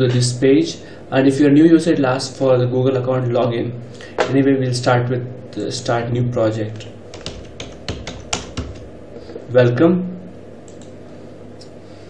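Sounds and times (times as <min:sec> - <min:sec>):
computer keyboard typing: 0:06.8 - 0:08.9.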